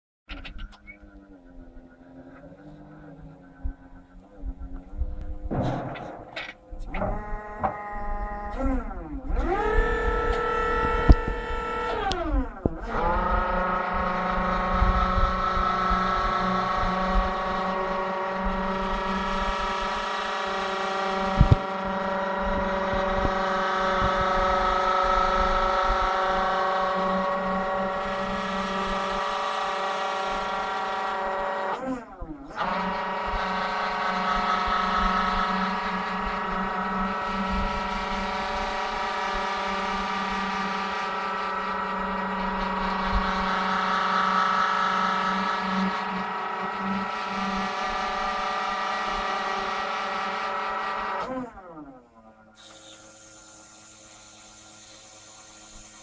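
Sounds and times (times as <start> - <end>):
hydraulic pump running: 0.3 - 56.0.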